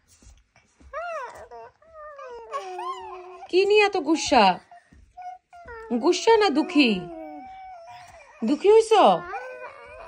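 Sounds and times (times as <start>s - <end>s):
young child whining: 0.9s - 3.5s, 5.2s - 10.0s.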